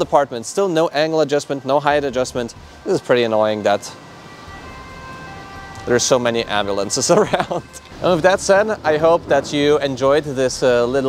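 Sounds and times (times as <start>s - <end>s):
faint ambulance siren: 0.0s - 11.0s.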